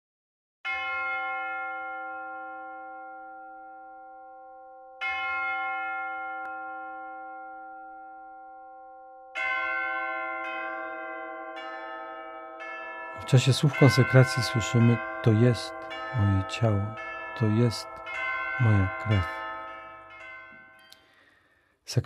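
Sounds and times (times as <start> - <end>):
bell ringing: 12.6 - 21.6.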